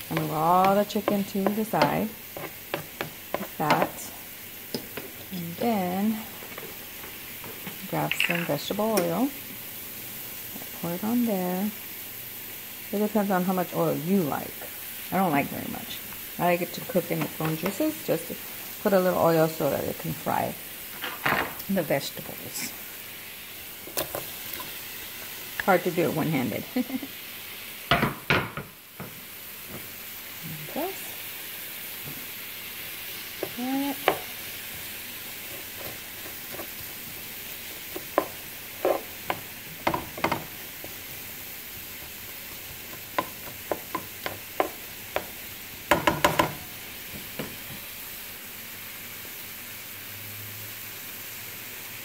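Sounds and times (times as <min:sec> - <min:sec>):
utensil clacking against pan: 0:00.0 - 0:04.0, 0:37.9 - 0:41.0, 0:42.0 - 0:47.7
food sizzling in a pan: 0:00.0 - 0:52.0.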